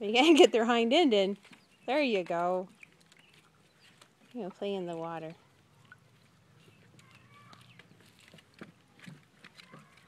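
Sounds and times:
puppy paws splashing in water: 0.2 - 10.0.

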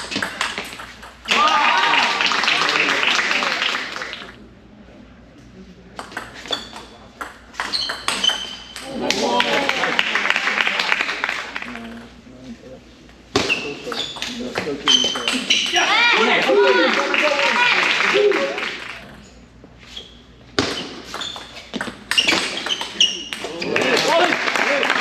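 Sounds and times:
table tennis ball hits: 0.0 - 2.1, 6.0 - 9.2, 13.4 - 16.0, 20.6 - 24.2.

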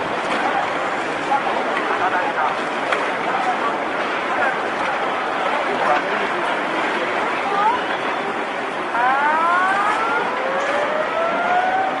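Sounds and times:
steady rushing noise: 0.0 - 12.0
siren wailing: 8.9 - 12.0.

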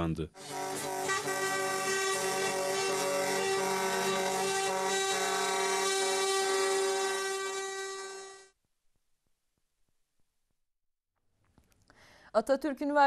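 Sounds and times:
truck air horn blast: 0.4 - 8.5.

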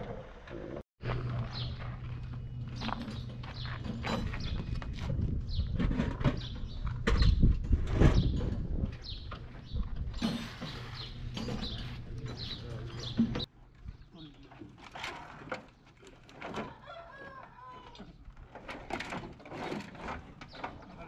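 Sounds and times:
birds chirping: 1.3 - 14.7
knocks and clatter: 2.7 - 13.5.

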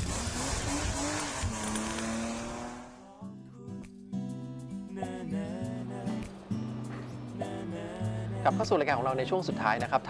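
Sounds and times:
car engine: 0.0 - 3.1
plucked guitar music: 3.1 - 10.0.

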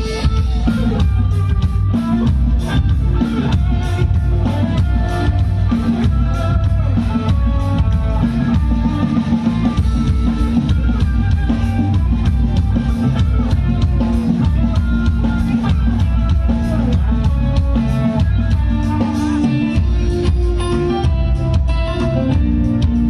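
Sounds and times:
drum kit: 0.0 - 23.0
electric guitars: 0.0 - 23.0
keyboards: 0.0 - 23.0.

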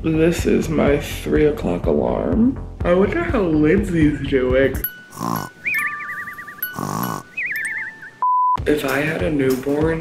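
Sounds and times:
warbling phone alarm: 4.8 - 8.6
person groaning sleepily: 5.1 - 5.6, 6.7 - 7.3.

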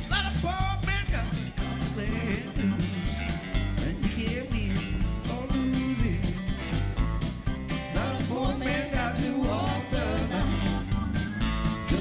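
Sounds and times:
man singing: 0.0 - 3.2, 3.8 - 6.5, 7.9 - 10.9, 11.8 - 12.0
live band playing: 0.0 - 12.0.

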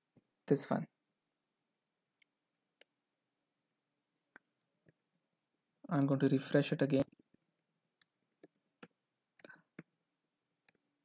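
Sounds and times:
computer keyboard keystrokes: 7.0 - 7.4.

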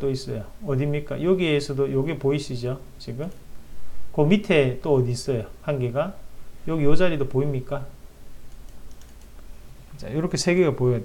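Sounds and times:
low room hum: 0.0 - 11.0
computer keyboard and mouse clicks: 8.5 - 9.5.

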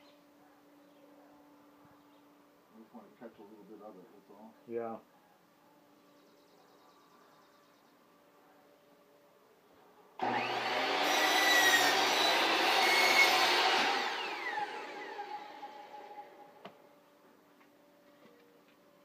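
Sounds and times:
miter saw cutting wood: 10.2 - 16.6
saw spinning down: 10.2 - 16.6.

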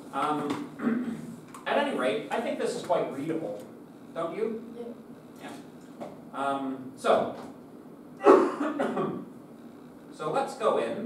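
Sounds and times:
man coughing: 8.2 - 9.2.

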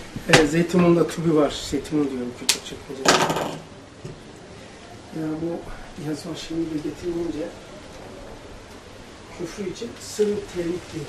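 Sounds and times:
small hard objects clattering: 3.0 - 3.6.

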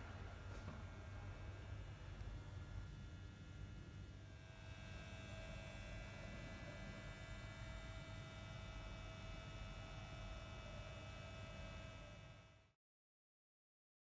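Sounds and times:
faint electrical hum: 0.0 - 12.6
thin steady whining tones: 0.0 - 12.7.

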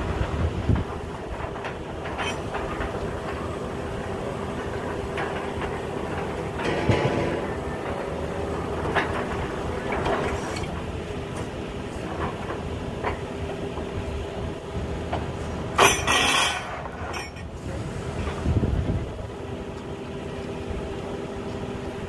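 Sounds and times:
drilling rig running: 0.0 - 22.0.

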